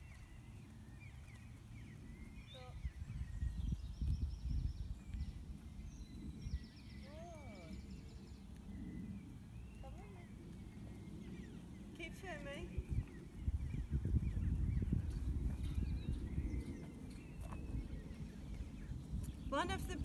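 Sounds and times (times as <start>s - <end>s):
small birds chirping: 0.0s - 20.0s
wind buffeting microphone: 0.0s - 20.0s.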